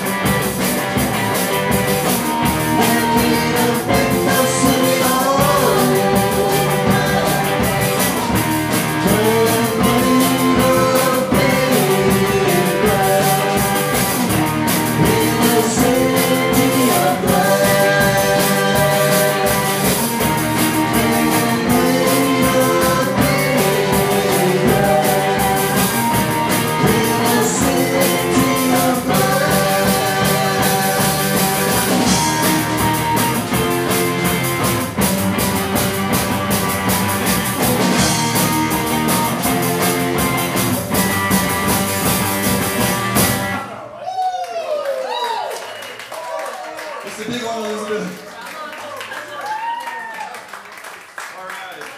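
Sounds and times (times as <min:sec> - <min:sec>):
electric guitars: 0:00.0 - 0:43.8
drum kit: 0:00.0 - 0:43.9.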